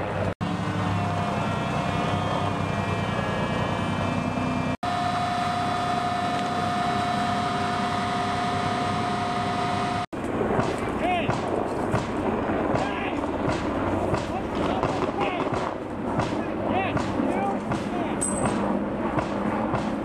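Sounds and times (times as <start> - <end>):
diesel engine running: 0.0 - 10.1
high whine: 0.0 - 20.0.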